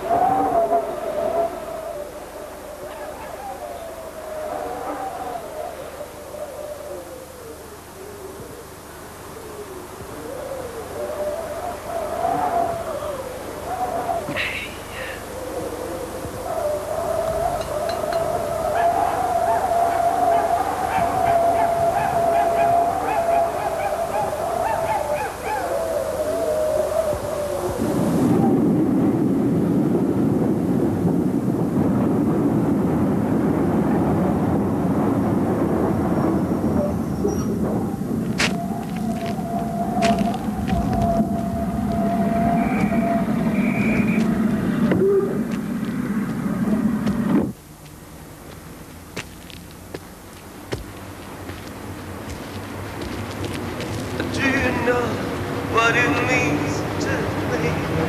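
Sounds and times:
wavering held tone: 0:17.3 - 0:18.5.

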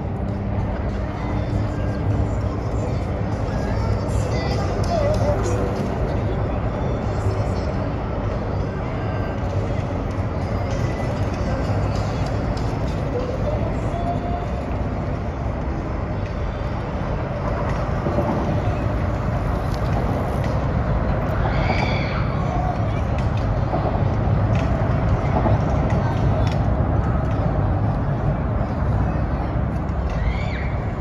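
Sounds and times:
low rumble of city traffic: 0:00.0 - 0:31.0.

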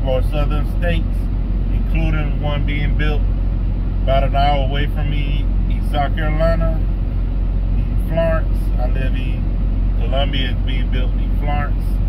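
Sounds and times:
truck engine rumble: 0:00.0 - 0:12.0.

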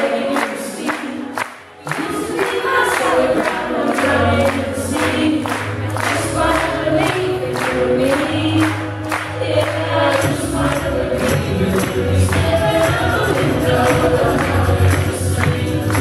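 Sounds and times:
hand claps on the beat: 0:00.0 - 0:16.0
live band music: 0:00.0 - 0:16.0
voices singing together: 0:00.0 - 0:16.0.

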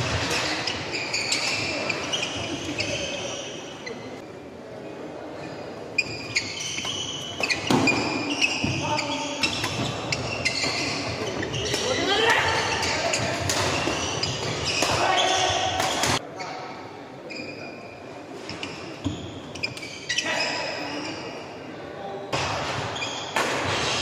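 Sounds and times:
shoes squeaking on court: 0:00.0 - 0:04.2, 0:05.4 - 0:16.6, 0:17.2 - 0:21.4, 0:22.8 - 0:24.0
players' voices: 0:00.0 - 0:19.2.

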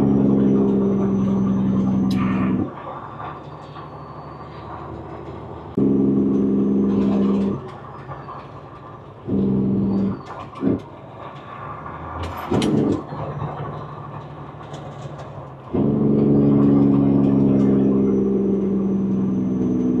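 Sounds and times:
road noise: 0:00.0 - 0:20.0
truck engine drone: 0:00.0 - 0:20.0
truck air horn blasts: 0:05.8 - 0:07.6, 0:15.7 - 0:17.9.

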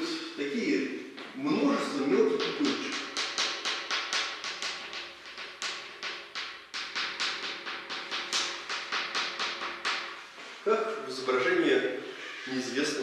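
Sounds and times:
chalk tapping on blackboard: 0:02.3 - 0:10.6.

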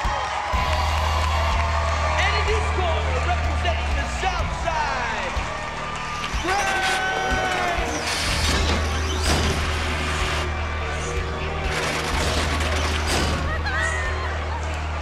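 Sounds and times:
music with deep bass: 0:00.0 - 0:15.0
spectators shouting and whooping: 0:00.0 - 0:15.0.

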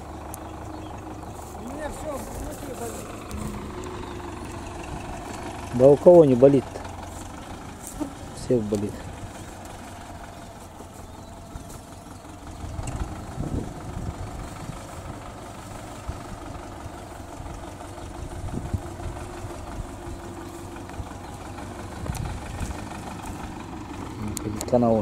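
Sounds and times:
distant diesel tractor engine: 0:00.0 - 0:25.0.

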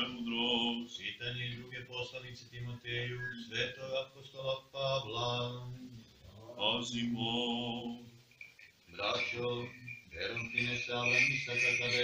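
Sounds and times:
man chanting: 0:00.0 - 0:08.0, 0:08.9 - 0:12.0.

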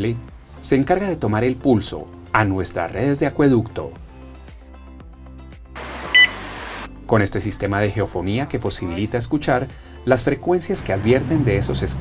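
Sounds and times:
quiet background music: 0:00.0 - 0:12.0
steady electronic hiss: 0:05.8 - 0:06.9
short high beep: 0:06.1 - 0:06.6.

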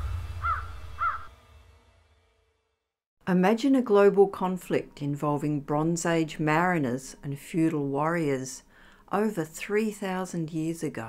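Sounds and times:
low rumble: 0:00.0 - 0:02.5
crow cawing: 0:00.3 - 0:01.3.

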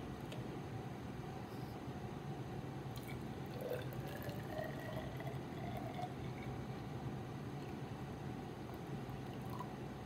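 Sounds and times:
water pouring into glass cylinder: 0:03.0 - 0:06.7, 0:09.1 - 0:09.8.

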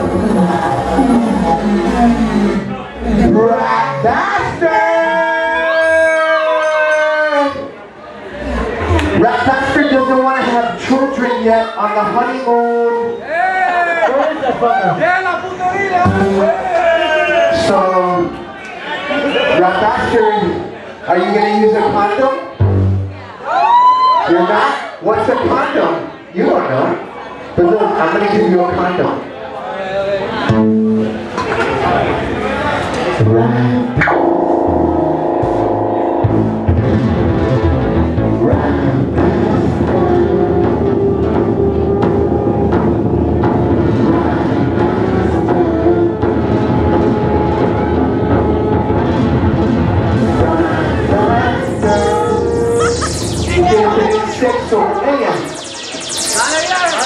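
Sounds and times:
electronic music: 0:00.0 - 0:03.8, 0:22.6 - 0:23.4, 0:33.2 - 0:57.0
howl-like note through pa: 0:51.7 - 0:57.0.

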